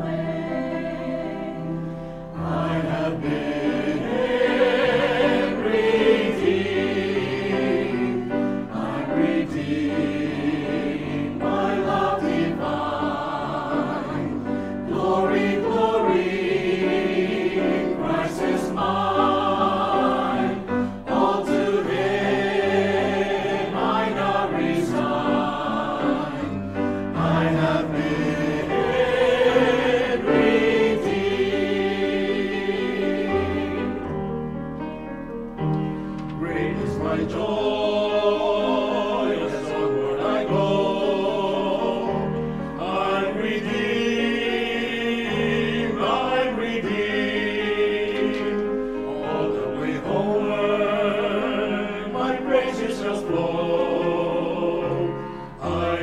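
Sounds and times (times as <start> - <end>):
mixed choir singing a hymn: 0.0 - 34.4, 35.8 - 56.0.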